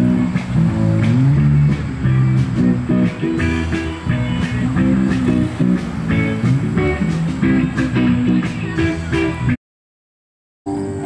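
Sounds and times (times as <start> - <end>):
acoustic guitar picked notes: 0.0 - 9.6, 10.7 - 11.0.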